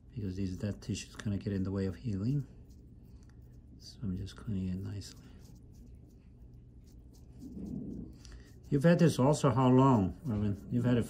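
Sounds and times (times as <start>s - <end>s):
soft low sound: 2.1s - 11.0s.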